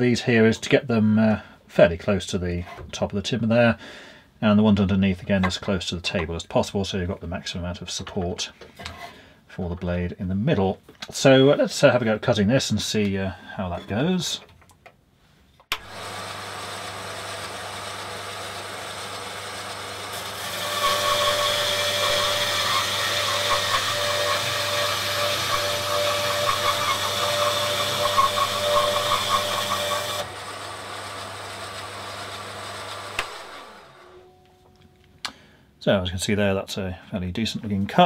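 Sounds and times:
bandsaw blade cutting wood: 0:15.7 - 0:34.3
bandsaw running: 0:15.7 - 0:34.3.

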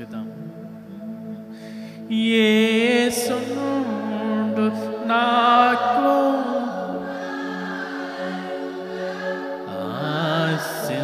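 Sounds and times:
man singing a chant: 0:02.1 - 0:06.8, 0:09.7 - 0:11.0.

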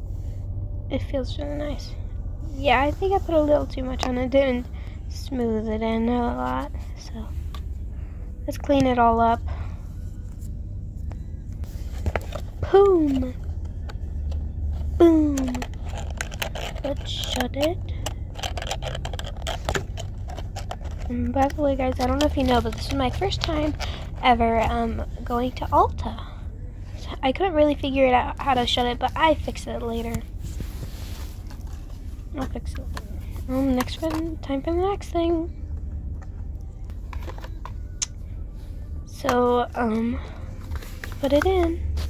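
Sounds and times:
steady low rumble: 0:00.0 - 0:42.0
plastic box clicks and scrapes: 0:15.3 - 0:24.2.

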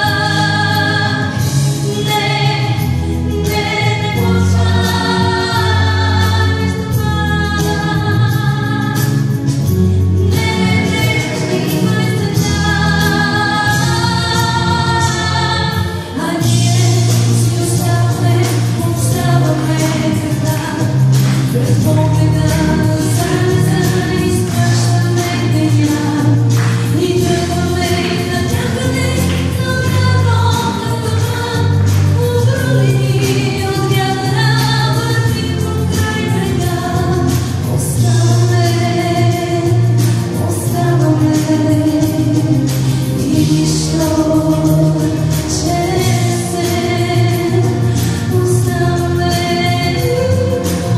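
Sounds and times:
instrumental accompaniment with bass: 0:00.0 - 0:50.9
woman singing: 0:00.0 - 0:50.9.

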